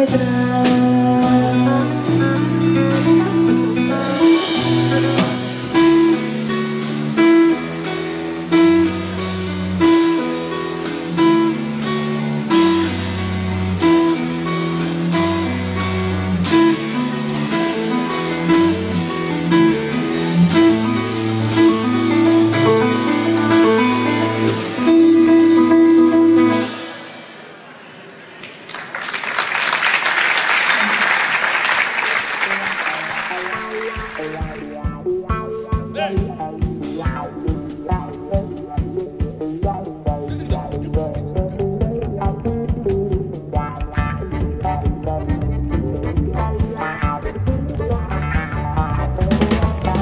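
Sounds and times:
bass notes: 0.0s - 27.0s, 33.3s - 50.0s
drum kit: 0.0s - 27.9s, 29.3s - 50.0s.

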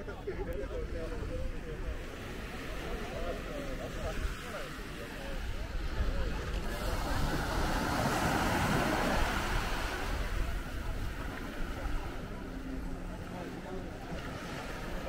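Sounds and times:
faint voices: 0.0s - 15.0s
small waves breaking on beach: 1.0s - 15.0s.

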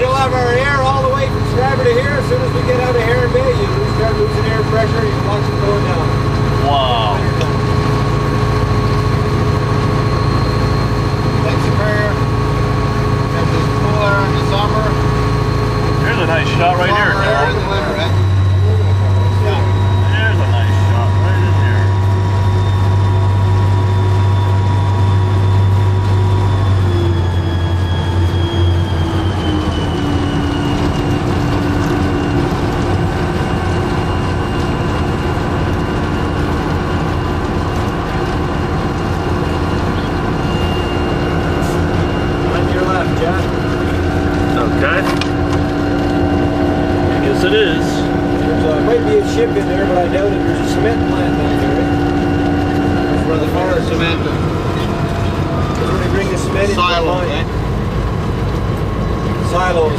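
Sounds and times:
diesel locomotive engine running: 0.0s - 59.9s
rail noise: 0.0s - 59.9s.

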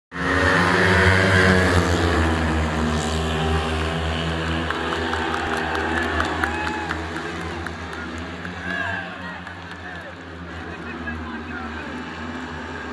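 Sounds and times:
motorcycles racing: 0.1s - 12.9s.

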